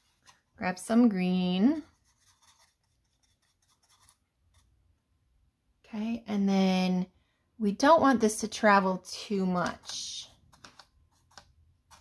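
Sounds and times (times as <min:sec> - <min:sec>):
paintbrush scratching palette: 0:00.0 - 0:04.8, 0:09.6 - 0:12.0.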